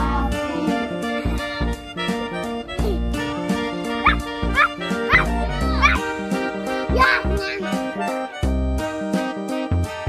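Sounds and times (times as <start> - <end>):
background music: 0.0 - 10.0
high puppy-like yips: 4.0 - 6.1.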